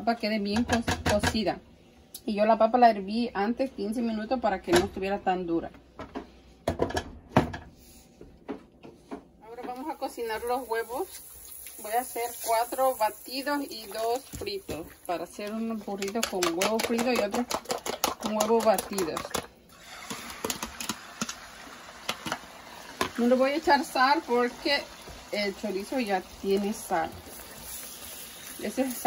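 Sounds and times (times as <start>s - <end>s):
eggs sizzling in hot oil: 9.6s - 16.2s, 19.7s - 29.0s.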